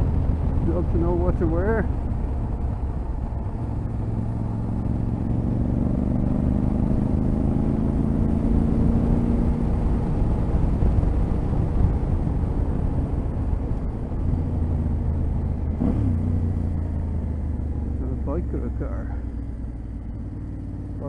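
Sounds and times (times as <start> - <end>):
motorcycle engine running: 0.0 - 21.0
wind and road noise: 0.0 - 21.0.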